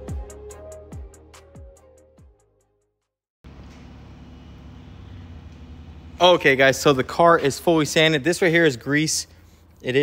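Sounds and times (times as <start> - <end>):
low background hum: 3.5 - 10.0.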